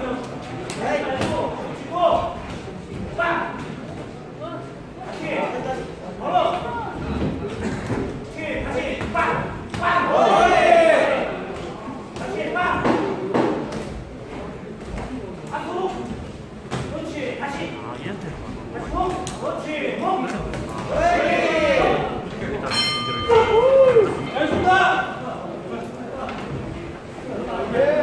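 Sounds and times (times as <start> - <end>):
voices calling out in a hall: 0.0 - 28.0.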